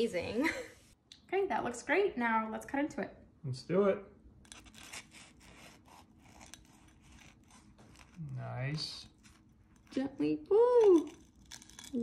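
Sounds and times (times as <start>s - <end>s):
knife crunching fried crust: 4.5s - 9.9s, 10.8s - 12.0s.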